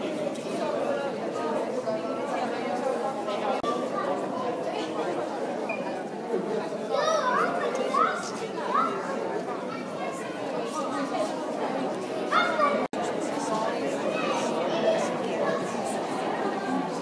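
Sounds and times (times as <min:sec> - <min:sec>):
indistinct chatter in echoing hall: 0:00.0 - 0:17.0.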